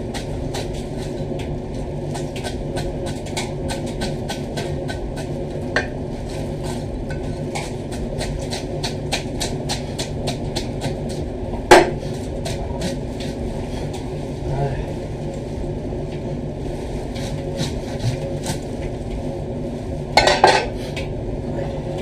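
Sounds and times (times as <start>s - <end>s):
steady background hum: 0.0s - 22.0s.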